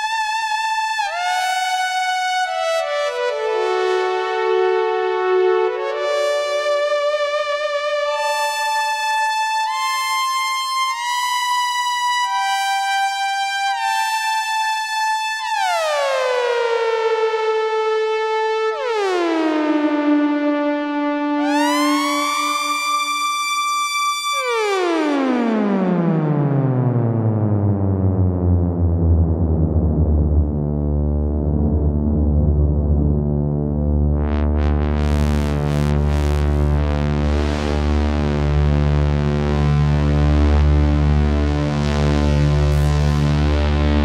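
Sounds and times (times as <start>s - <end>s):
synthesizer chords gliding: 17.8s - 44.0s.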